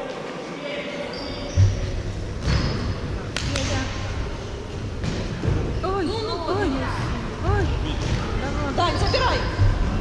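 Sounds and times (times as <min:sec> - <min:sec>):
sports hall background noise: 0:00.0 - 0:10.0
shoes squeaking on court floor: 0:01.1 - 0:03.1
ball struck with echoing smacks: 0:05.0 - 0:05.6.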